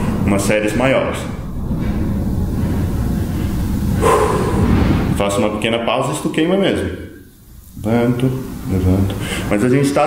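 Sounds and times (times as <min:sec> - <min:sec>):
low noisy rumble: 0:00.0 - 0:10.0
man breathing hard: 0:01.6 - 0:05.2, 0:09.2 - 0:09.5.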